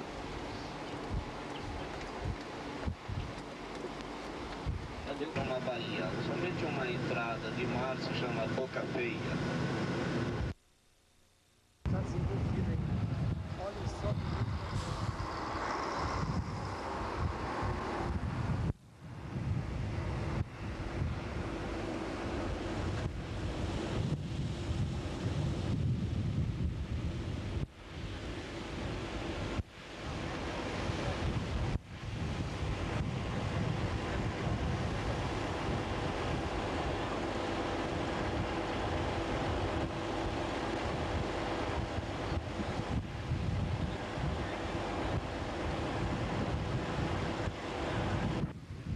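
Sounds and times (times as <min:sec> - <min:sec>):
strong wind on microphone: 0:00.0 - 0:03.4, 0:04.6 - 0:05.6, 0:11.9 - 0:48.9.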